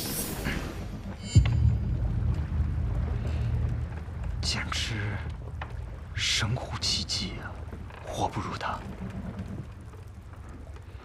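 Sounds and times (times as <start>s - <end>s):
steady low rumble: 0.1s - 11.0s.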